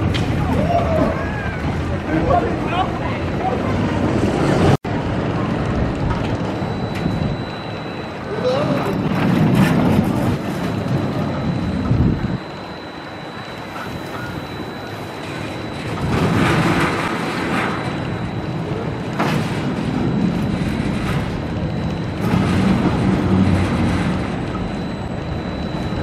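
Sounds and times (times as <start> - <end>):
roller coaster rumbling on steel track: 0.0 - 26.0
wind on microphone: 8.2 - 12.9.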